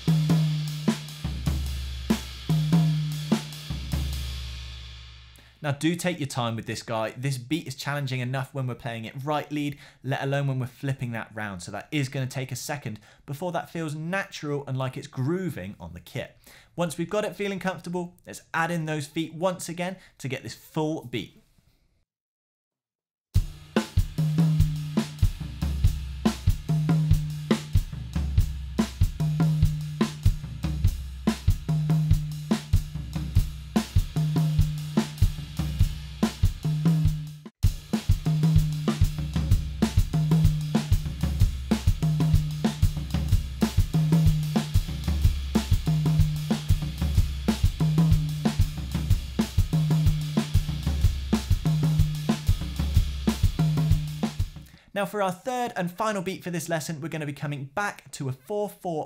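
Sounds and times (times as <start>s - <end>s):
drum kit groove: 0.0s - 7.0s, 23.4s - 55.3s.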